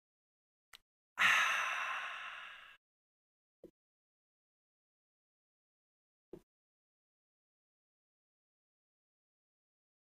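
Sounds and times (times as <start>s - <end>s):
man exhaling ahh: 1.2s - 2.8s.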